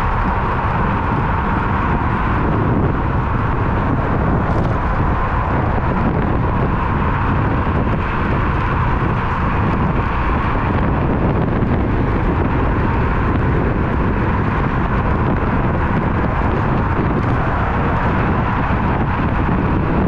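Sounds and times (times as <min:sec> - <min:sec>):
road noise: 0:00.0 - 0:20.0
wind rush on microphone: 0:00.0 - 0:20.0.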